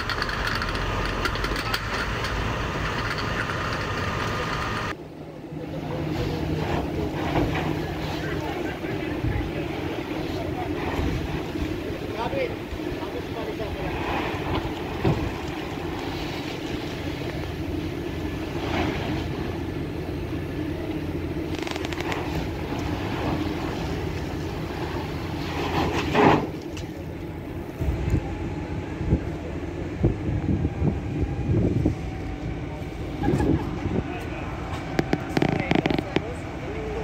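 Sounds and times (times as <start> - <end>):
vehicle engine running: 15.9 - 25.3
loud burst of noise: 21.4 - 23.4, 34.8 - 36.4.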